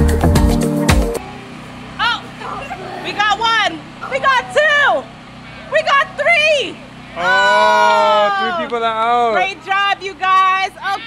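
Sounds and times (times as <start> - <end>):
child calling out excitedly: 10.8 - 11.0.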